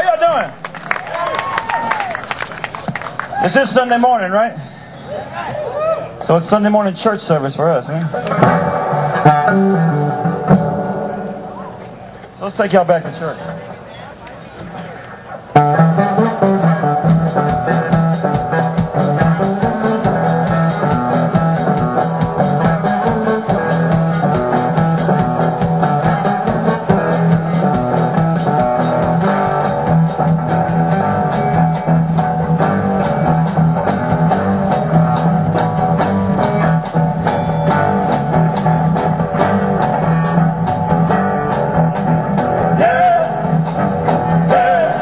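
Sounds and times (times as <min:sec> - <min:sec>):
bass guitar: 0:07.6 - 0:12.3, 0:14.6 - 0:45.0
drum kit: 0:08.1 - 0:11.6, 0:15.6 - 0:45.0
electric guitar: 0:08.1 - 0:12.4, 0:14.7 - 0:45.0.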